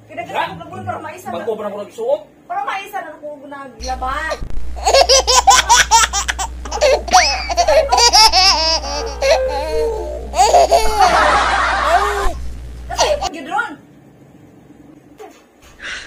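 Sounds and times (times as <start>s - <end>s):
steady low hum: 3.8s - 16.0s
hearty laughter: 10.4s - 12.4s.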